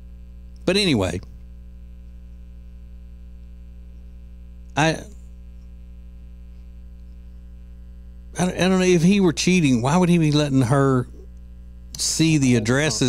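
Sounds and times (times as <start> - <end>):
electrical mains hum: 0.0 - 13.0
person speaking a word: 12.0 - 13.0.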